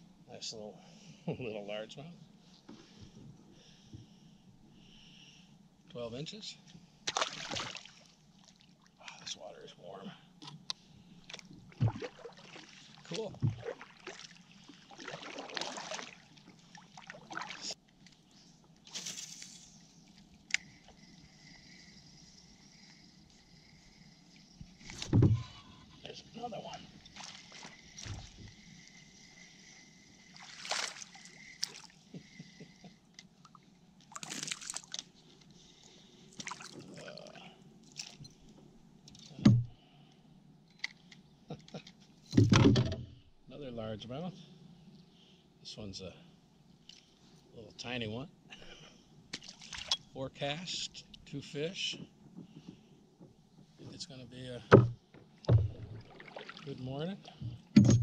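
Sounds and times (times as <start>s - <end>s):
water sloshing against hull: 6.7s - 9.5s, 10.4s - 19.0s, 19.8s - 39.8s, 49.3s - 50.2s, 51.8s - 58.0s
knocks and splashes: 7.0s - 8.6s, 11.3s - 17.7s, 27.2s - 28.5s, 30.4s - 31.9s, 54.7s - 58.0s.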